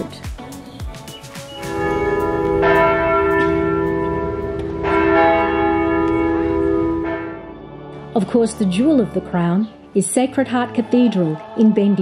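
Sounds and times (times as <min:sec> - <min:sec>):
church bell ringing: 0:01.6 - 0:07.8.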